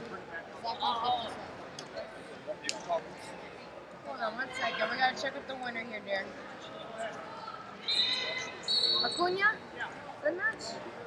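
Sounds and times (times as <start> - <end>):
chatter in hall: 0.0 - 11.0.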